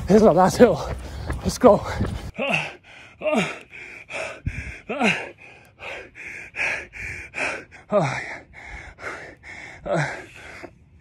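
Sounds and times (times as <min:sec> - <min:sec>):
man panting hard: 0:00.6 - 0:11.0.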